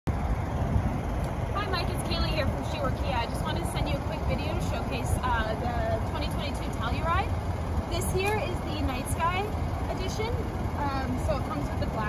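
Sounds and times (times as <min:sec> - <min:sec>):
wind buffeting microphone: 0:00.1 - 0:12.0
woman speaking: 0:01.6 - 0:07.3, 0:07.9 - 0:12.0.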